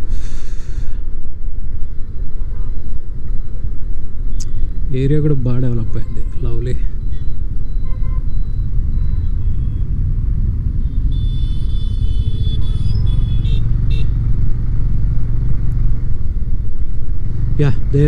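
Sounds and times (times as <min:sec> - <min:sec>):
wind and road noise: 0:00.0 - 0:18.0
motorcycle engine running: 0:08.8 - 0:17.8.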